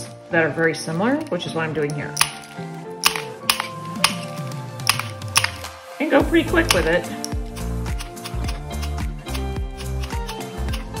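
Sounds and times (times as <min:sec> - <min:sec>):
background music: 0:00.0 - 0:11.0
glass nippers snapping glass: 0:01.0 - 0:05.8, 0:06.6 - 0:11.0.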